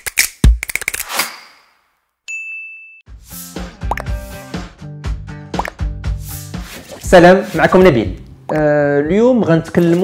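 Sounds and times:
bright ding: 2.3s - 3.1s
background music: 3.1s - 10.0s.

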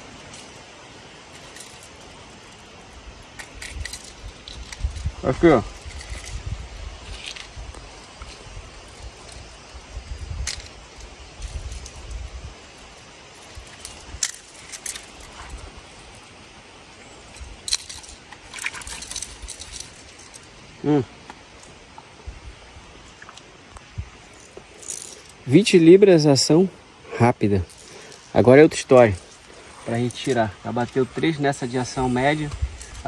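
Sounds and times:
fishing tackle clicking and jingling: 0.0s - 16.3s, 17.2s - 20.7s, 24.2s - 25.4s, 27.6s - 33.0s.

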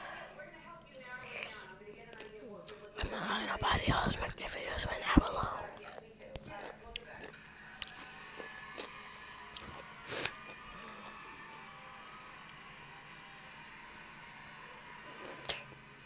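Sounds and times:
person chewing food: 1.0s - 8.9s, 9.5s - 11.1s.

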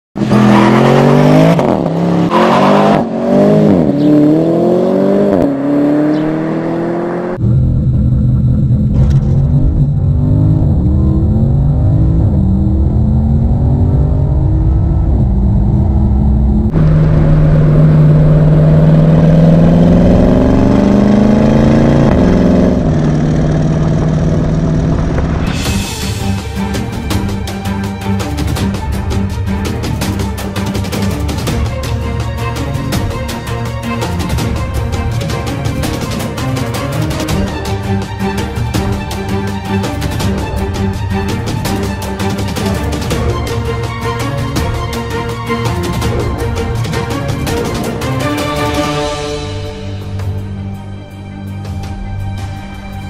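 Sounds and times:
car engine accelerating hard: 0.2s - 25.8s.

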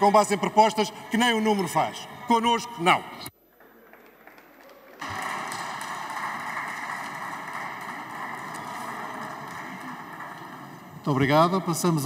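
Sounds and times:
applause: 3.4s - 11.6s.

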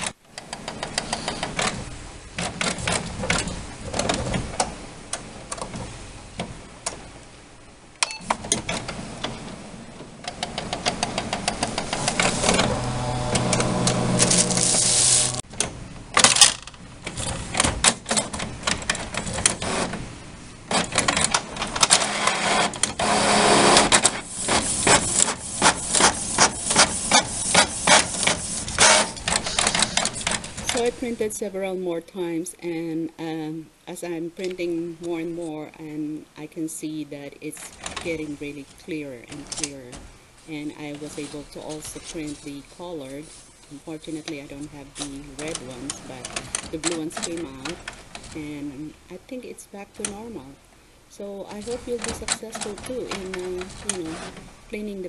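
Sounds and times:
printer motors whirring: 8.6s - 15.5s, 20.7s - 31.0s, 51.6s - 54.5s
printer mechanism clicking: 20.7s - 30.9s, 44.2s - 48.4s, 51.6s - 54.5s.

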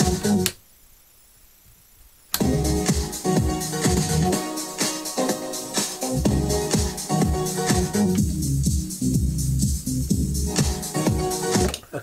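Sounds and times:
house music from dj mixer: 0.0s - 0.5s, 2.4s - 11.8s.

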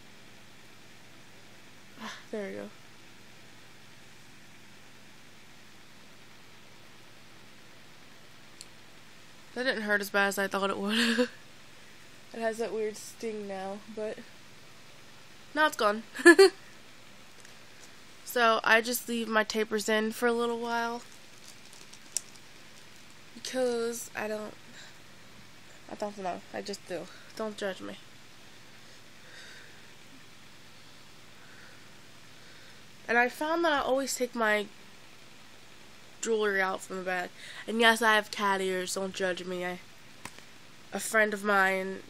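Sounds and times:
faint room tone hiss: 0.0s - 42.0s.

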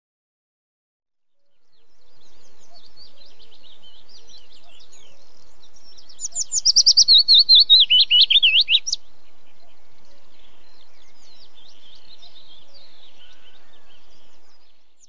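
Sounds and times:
small birds chirping: 1.3s - 15.0s.

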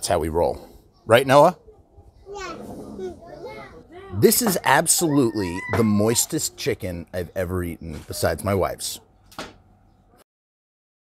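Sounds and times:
faint background noise: 0.0s - 10.2s.

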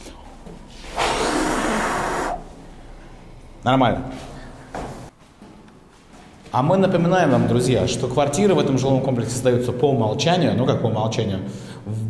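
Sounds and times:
man blowing hard breath: 0.9s - 2.5s.

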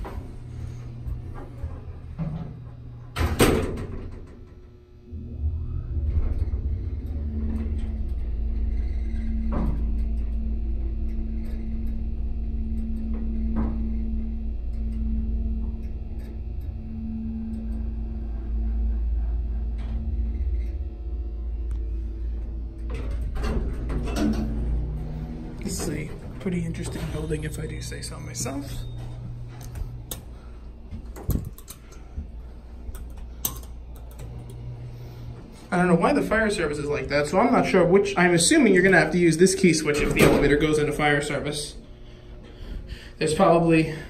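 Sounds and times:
elevator doors clattering open: 0.0s - 15.1s, 22.2s - 30.5s, 35.7s - 42.2s
elevator car rumbling: 0.0s - 44.0s
humming tone: 0.0s - 44.0s
elevator doors slamming shut: 1.4s - 10.5s, 22.4s - 29.3s, 35.8s - 41.6s.

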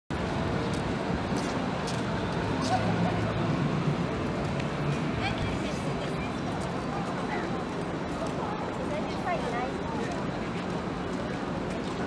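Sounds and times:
distant traffic rumble: 0.1s - 12.0s.

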